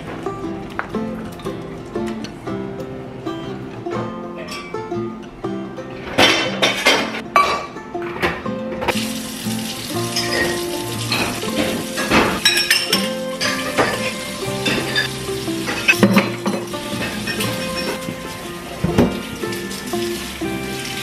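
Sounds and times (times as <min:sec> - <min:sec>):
metal utensils clinking: 0:04.4 - 0:04.9, 0:06.0 - 0:21.0
food sizzling in frying pan: 0:08.9 - 0:21.0.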